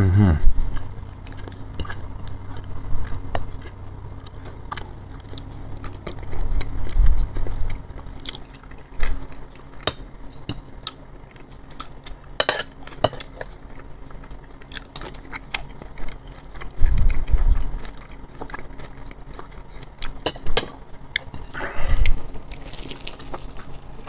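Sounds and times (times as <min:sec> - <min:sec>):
close chewing: 0:00.4 - 0:24.0.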